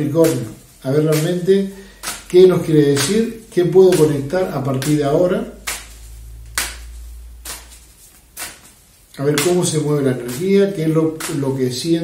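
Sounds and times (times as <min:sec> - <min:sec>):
cards being shuffled: 0:02.0 - 0:10.6
card slaps: 0:04.8 - 0:07.8.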